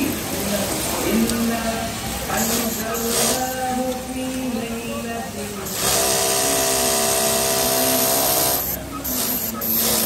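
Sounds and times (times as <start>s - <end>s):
sewing machine whirring: 5.7s - 10.0s.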